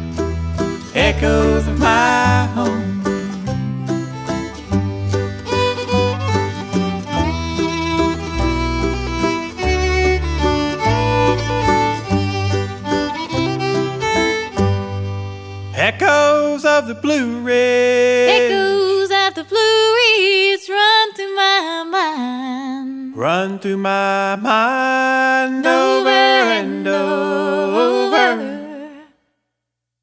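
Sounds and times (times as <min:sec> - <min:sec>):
banjo: 0:00.0 - 0:16.2, 0:18.1 - 0:19.2
fiddle melody: 0:00.0 - 0:16.5, 0:18.1 - 0:19.3, 0:25.7 - 0:28.7
bass: 0:00.0 - 0:19.9.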